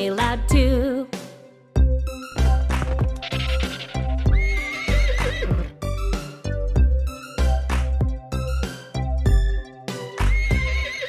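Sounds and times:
children's song backing track: 0:00.0 - 0:11.0
horse whinny: 0:03.2 - 0:05.8, 0:10.3 - 0:11.0.

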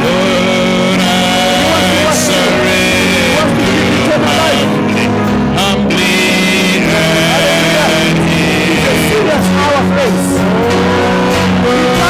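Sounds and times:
distorted electric guitar: 0:00.0 - 0:12.0
live worship band playing: 0:00.0 - 0:12.0.

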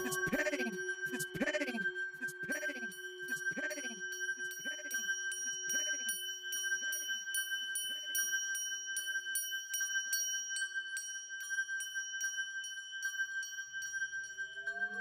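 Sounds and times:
low held electronic note: 0:00.0 - 0:01.7
high ringing tone: 0:00.0 - 0:15.0.

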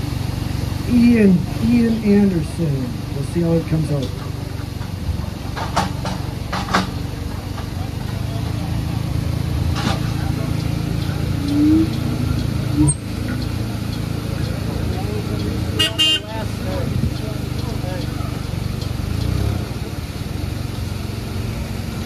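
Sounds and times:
forklift engine running: 0:00.0 - 0:22.0.

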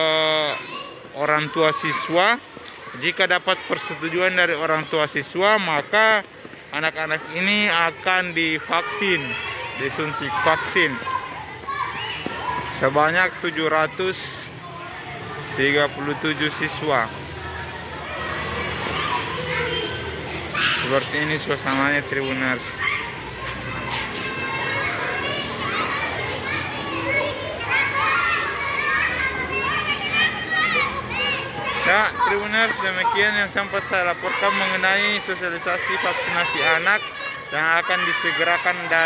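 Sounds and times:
children playing and calling out: 0:00.0 - 0:39.0.

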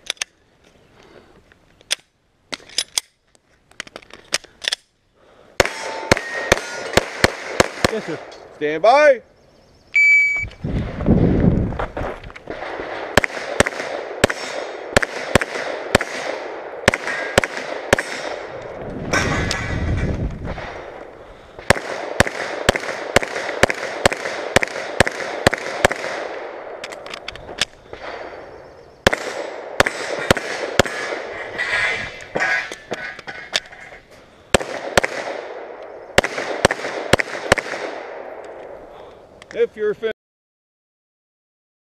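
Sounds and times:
pistol shots with echo: 0:05.6 - 0:08.3, 0:12.5 - 0:18.6, 0:21.6 - 0:26.8, 0:27.9 - 0:31.3, 0:34.5 - 0:38.5.

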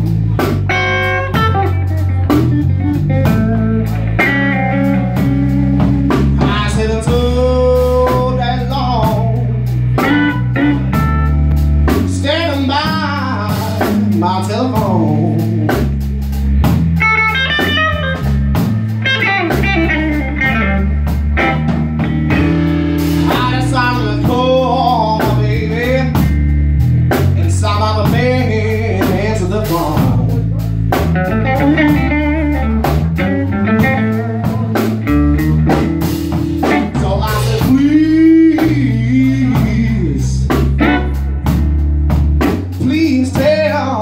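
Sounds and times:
drum kit: 0:00.0 - 0:44.0
electric guitar lead lines: 0:00.0 - 0:44.0.

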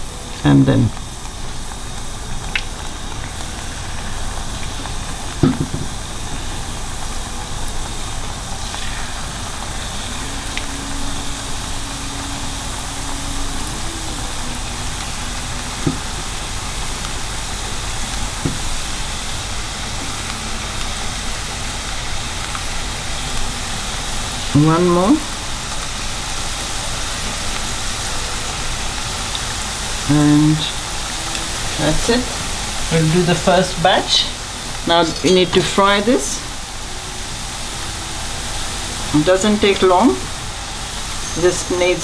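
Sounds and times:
batter sizzling in hot oil: 0:00.0 - 0:42.0.

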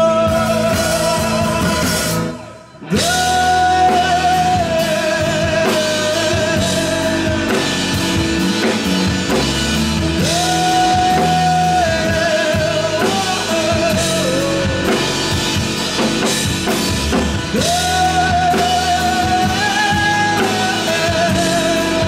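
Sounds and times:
bass guitar: 0:00.0 - 0:22.0
drum kit: 0:00.0 - 0:22.0
electric guitar: 0:00.0 - 0:22.0
singer holding long notes: 0:00.0 - 0:22.0.

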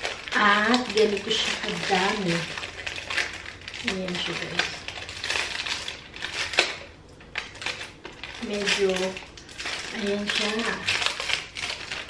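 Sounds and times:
plastic wrapper crinkling: 0:00.0 - 0:12.0.

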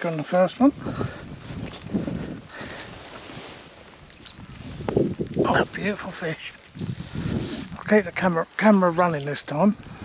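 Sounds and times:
wind buffeting microphone: 0:00.4 - 0:08.3, 0:09.7 - 0:10.0.

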